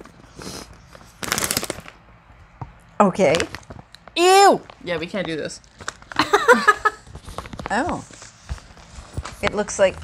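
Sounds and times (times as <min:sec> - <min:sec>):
snack packaging ripping open: 0:00.4 - 0:02.0, 0:03.3 - 0:04.9, 0:05.6 - 0:06.2.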